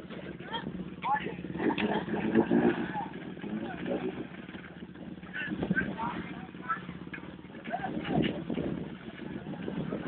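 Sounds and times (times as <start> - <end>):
off-road vehicle engines running: 0.0 - 10.0.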